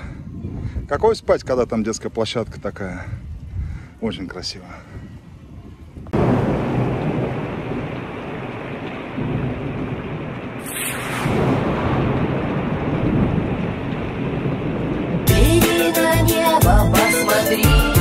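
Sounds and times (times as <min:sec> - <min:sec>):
rumbling thunder: 0:06.1 - 0:15.7
heavy rain: 0:06.2 - 0:18.0.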